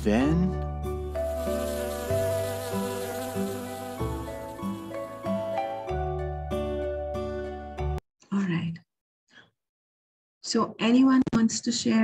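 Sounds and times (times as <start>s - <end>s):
gentle background music: 0.0s - 8.0s
cartoon bee buzzing: 1.2s - 5.6s.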